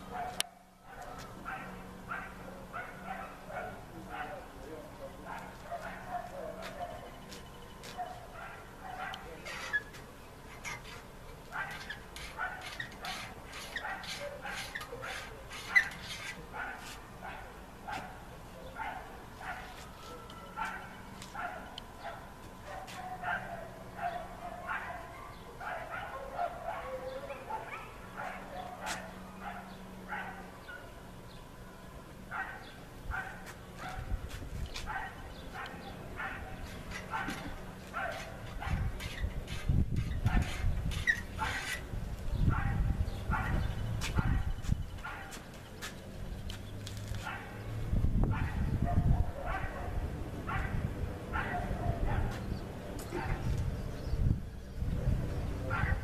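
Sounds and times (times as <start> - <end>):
dog barking and yipping: 0.0 - 4.5, 5.3 - 7.2, 7.8 - 9.9, 11.5 - 30.9, 32.3 - 34.1, 34.8 - 45.4, 47.2 - 47.6, 48.3 - 52.5, 53.1 - 53.5, 55.7 - 56.0.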